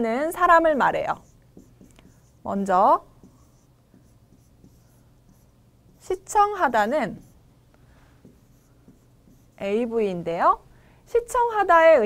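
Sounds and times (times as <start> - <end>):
marker pen writing on board: 1.1 - 2.5, 3.1 - 7.4, 8.2 - 9.9.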